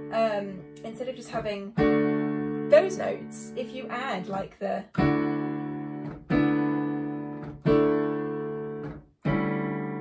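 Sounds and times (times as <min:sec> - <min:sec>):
digital piano chords: 0:00.0 - 0:10.0.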